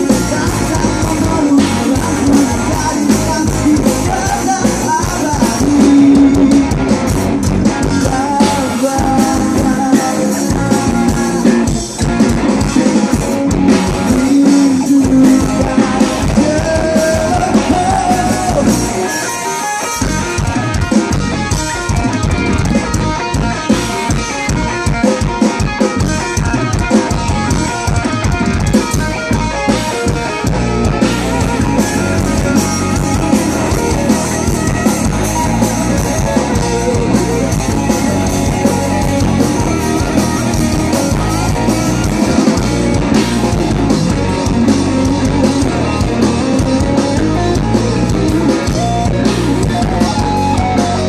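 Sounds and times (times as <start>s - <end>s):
bass guitar: 0.0s - 51.0s
distorted electric guitars: 0.0s - 51.0s
drum kit: 0.0s - 51.0s.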